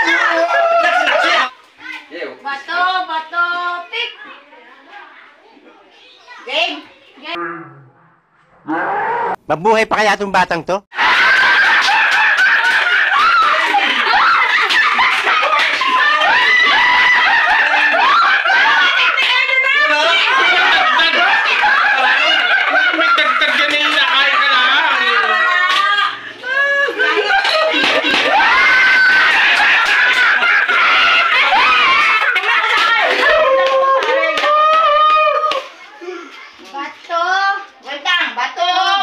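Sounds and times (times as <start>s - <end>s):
girls laughing and shrieking: 0.0s - 1.6s, 11.0s - 36.6s
hands clapping: 11.3s - 26.0s, 27.2s - 35.8s.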